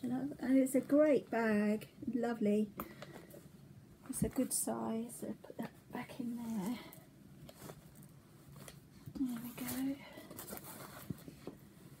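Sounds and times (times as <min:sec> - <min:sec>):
fabric bag rustling: 0:06.0 - 0:12.0.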